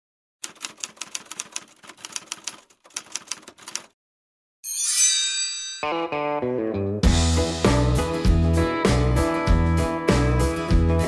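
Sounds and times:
typewriter keystrokes: 0.4 - 4.0.

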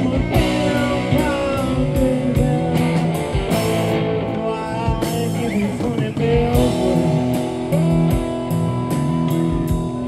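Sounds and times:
electric guitar notes: 0.0 - 10.0
rock band playing blues: 0.0 - 10.0
drum kit hit: 5.0 - 10.0.

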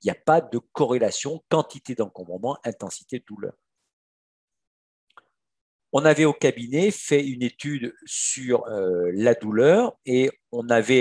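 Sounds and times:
man speaking: 0.0 - 3.5, 6.0 - 11.0.

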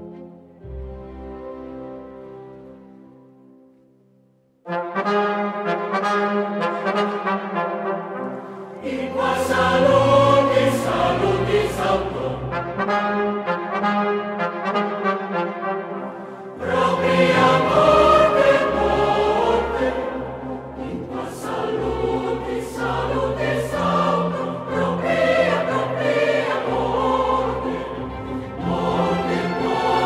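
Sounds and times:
choir and orchestra sacred music: 0.0 - 3.8, 4.6 - 30.0.

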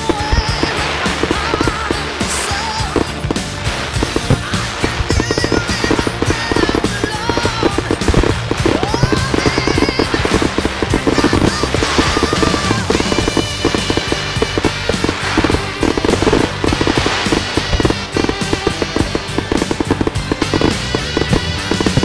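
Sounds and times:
fireworks bangs and crackles: 0.0 - 22.0
music playing: 0.0 - 22.0.

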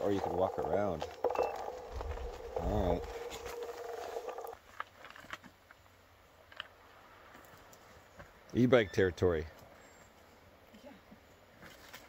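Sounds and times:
steady whine: 0.0 - 4.6.

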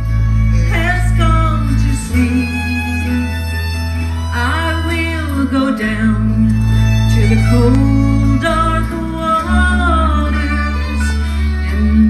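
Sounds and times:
bass notes: 0.0 - 12.0
mandolin: 0.0 - 12.0
person singing: 0.0 - 12.0.

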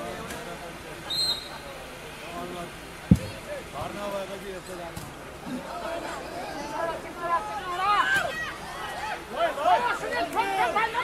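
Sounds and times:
crowd chatter: 0.0 - 11.0
volleyball thump: 3.1 - 3.9.

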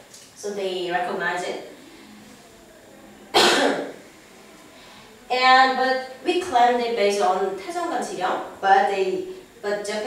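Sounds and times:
woman coughing: 3.3 - 3.9.

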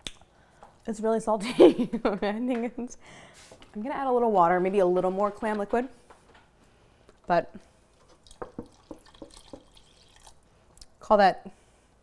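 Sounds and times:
water glugging from a jug: 8.0 - 10.4.

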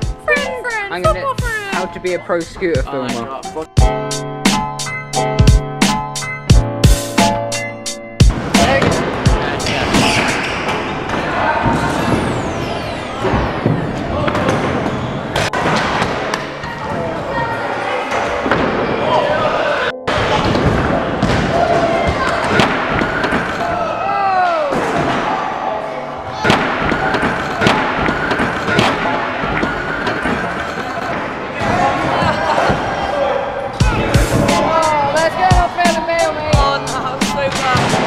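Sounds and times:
voices: 0.2 - 3.3.

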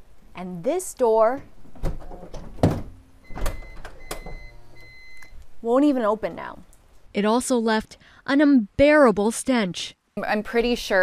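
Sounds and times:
sliding door clunking and knocking: 1.7 - 4.5.

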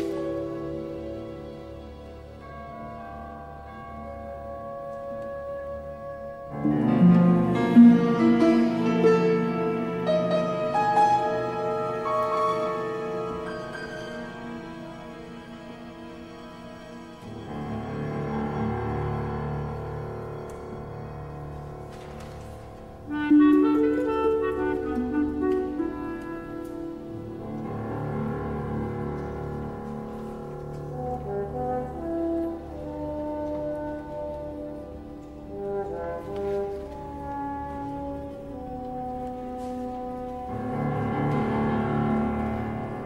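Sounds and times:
symphony orchestra playing slow music: 0.0 - 43.0
brass chords: 30.4 - 43.0.

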